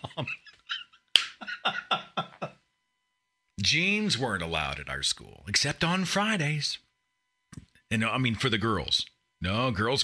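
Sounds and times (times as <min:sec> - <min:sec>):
man laughing: 0:00.0 - 0:02.7.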